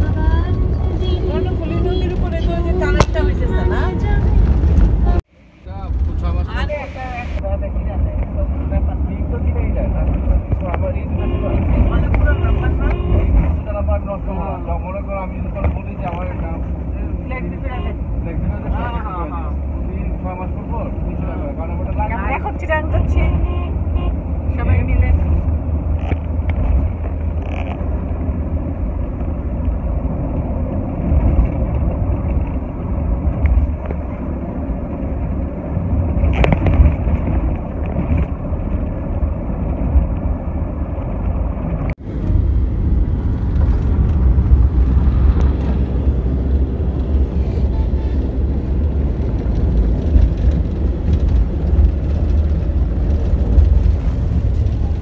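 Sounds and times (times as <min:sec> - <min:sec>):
car engine and road drone: 0:00.0 - 0:55.0.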